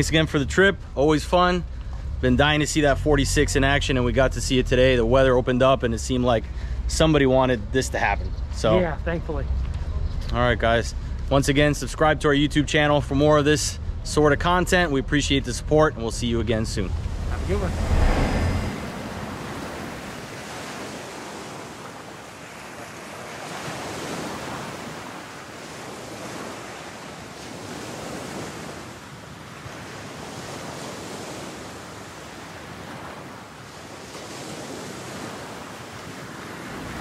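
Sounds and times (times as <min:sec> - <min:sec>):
ocean waves washing in: 0:13.4 - 0:37.0.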